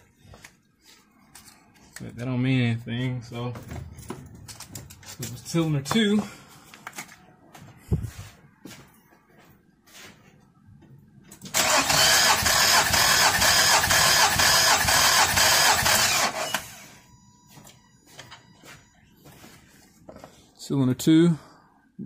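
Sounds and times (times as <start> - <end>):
starter cranking car engine: 11.5 - 16.8.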